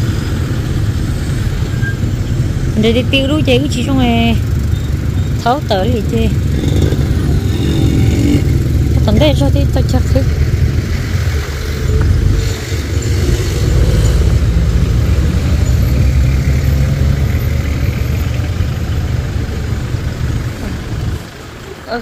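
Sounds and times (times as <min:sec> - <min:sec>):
vehicle engines rumbling: 0:00.0 - 0:22.0.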